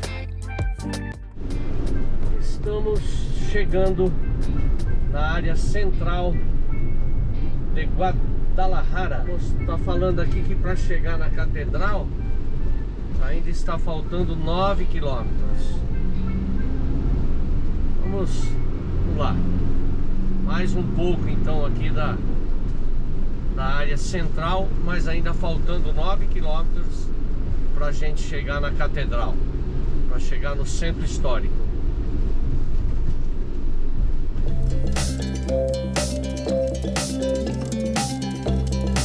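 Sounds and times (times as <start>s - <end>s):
car engine and tyre rumble: 1.4s - 35.5s.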